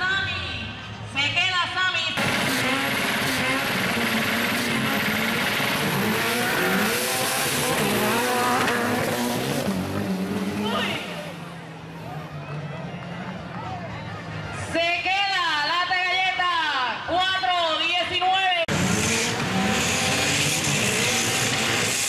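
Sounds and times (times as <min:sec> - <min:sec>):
engines revving at full throttle: 0:02.2 - 0:13.6, 0:18.7 - 0:22.0.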